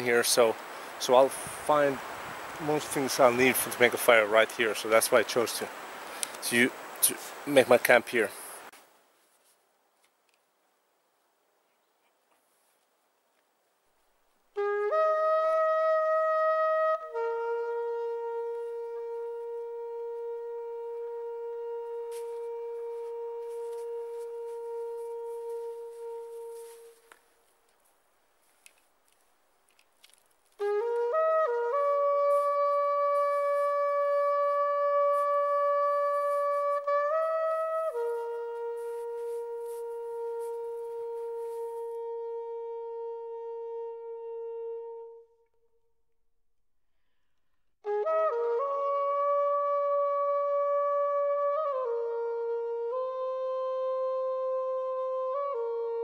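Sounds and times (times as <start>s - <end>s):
solo wind instrument playing: 14.5s - 27.6s, 30.4s - 45.9s, 47.8s - 56.0s.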